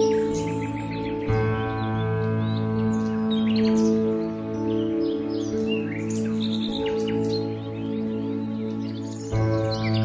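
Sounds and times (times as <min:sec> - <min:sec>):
birds chirping: 0:00.0 - 0:10.0
calm piano music: 0:00.0 - 0:10.0.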